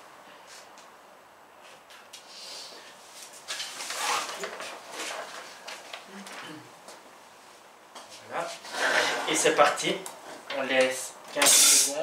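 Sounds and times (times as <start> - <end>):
paper rustling and crackling: 3.2 - 6.4.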